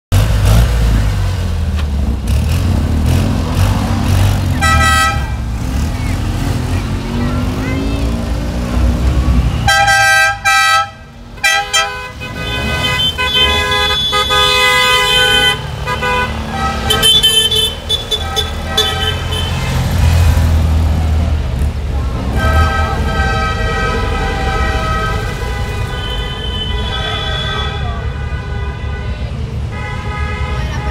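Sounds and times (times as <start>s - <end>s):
car engines rumbling: 0.1s - 30.9s
car horns tooting: 4.5s - 6.7s, 9.3s - 20.4s, 22.2s - 30.9s.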